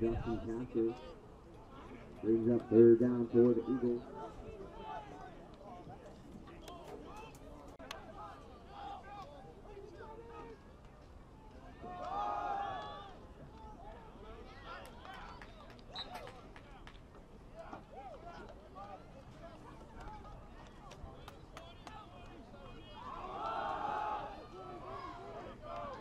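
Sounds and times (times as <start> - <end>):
people shouting at a football game: 0.1 - 10.6, 11.5 - 16.8, 21.3 - 26.0.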